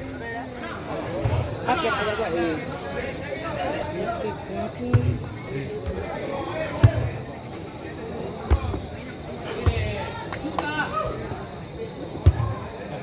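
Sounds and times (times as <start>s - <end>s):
spectators chatter: 0.0s - 13.0s
ball struck thuds: 4.9s - 6.0s, 6.8s - 7.2s.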